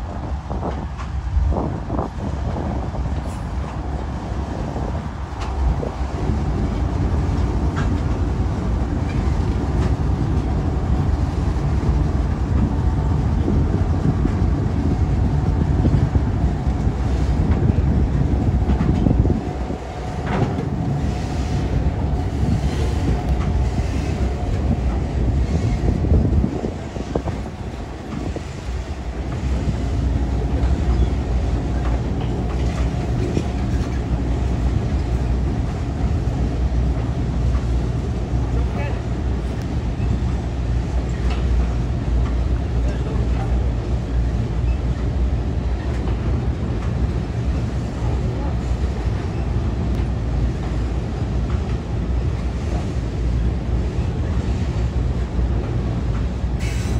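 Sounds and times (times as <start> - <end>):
locomotive rumble: 0.0 - 56.9.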